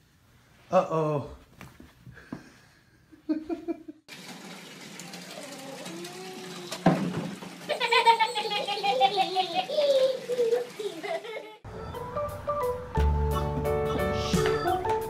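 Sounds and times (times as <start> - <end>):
water running into bathtub: 4.1 - 11.6.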